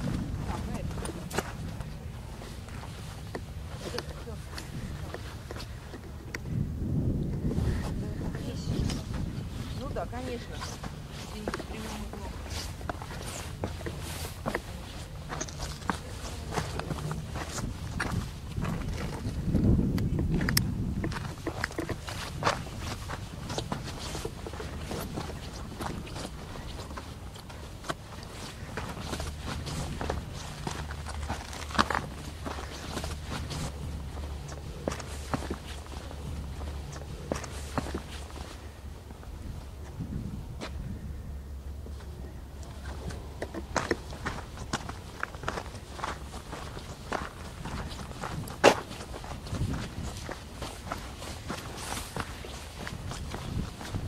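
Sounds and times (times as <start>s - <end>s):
footsteps crunching on gravel: 0.0s - 6.2s, 7.5s - 40.0s, 41.9s - 54.0s
wind buffeting microphone: 0.0s - 54.0s.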